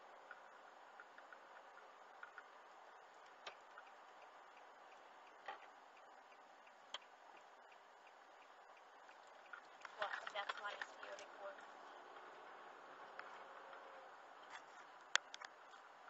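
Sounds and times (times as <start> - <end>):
road noise inside a car: 0.0 - 16.0
light ticks: 0.2 - 12.3.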